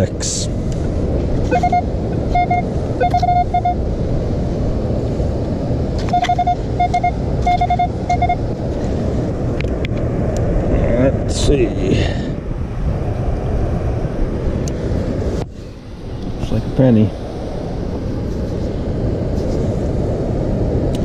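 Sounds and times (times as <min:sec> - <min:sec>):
surf and wind rush: 0:00.0 - 0:21.0
metal detector beeps: 0:01.5 - 0:03.8, 0:06.0 - 0:08.4.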